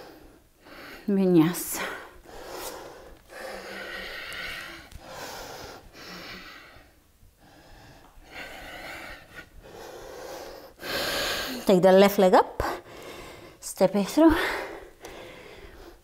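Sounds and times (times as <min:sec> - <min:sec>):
woman breathing hard: 0:01.7 - 0:11.7, 0:12.6 - 0:13.6, 0:14.3 - 0:16.0.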